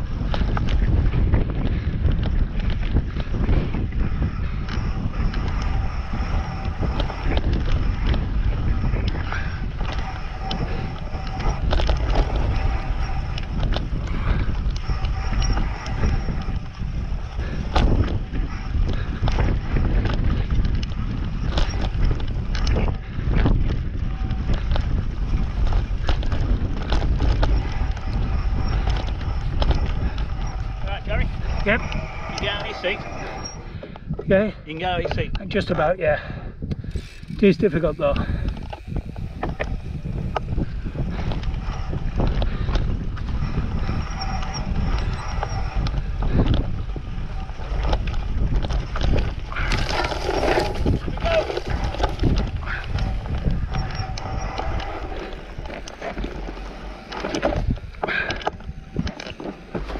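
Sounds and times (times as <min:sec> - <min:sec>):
bike knocks and rattles: 0:00.0 - 0:32.0, 0:36.7 - 0:59.9
bike tyre rumble: 0:00.0 - 0:59.9
wind buffeting microphone: 0:00.0 - 0:59.9.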